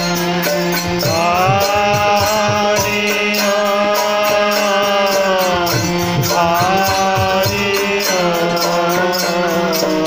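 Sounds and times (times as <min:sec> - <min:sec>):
percussion beat: 0:00.0 - 0:10.0
voices chanting: 0:00.0 - 0:10.0.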